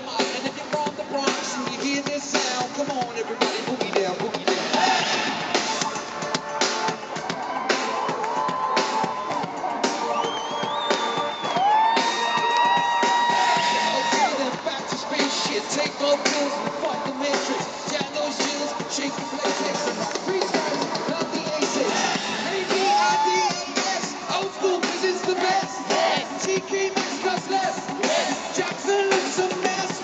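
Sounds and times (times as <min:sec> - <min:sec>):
driving drum beat: 0:00.0 - 0:30.0
live pop-rock band music: 0:00.0 - 0:30.0.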